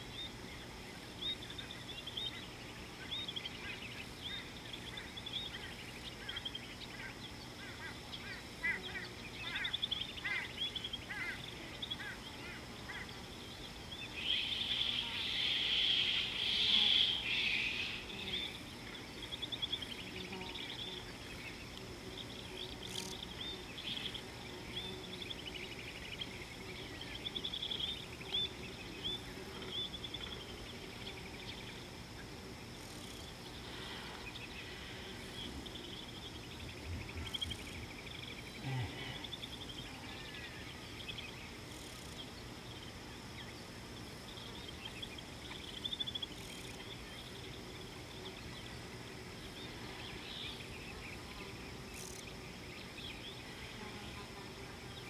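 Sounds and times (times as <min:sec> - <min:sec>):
high insect drone: 0:00.0 - 0:55.0
small birds chirping: 0:00.0 - 0:55.0.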